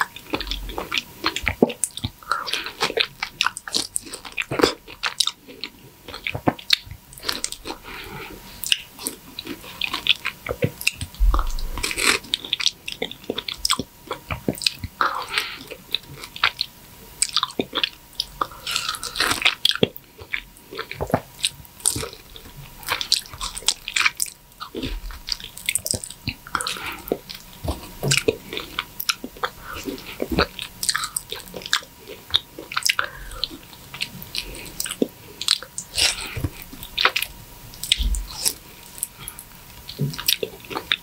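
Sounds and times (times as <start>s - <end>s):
mouth eating juicy fruit: 0.0s - 41.0s.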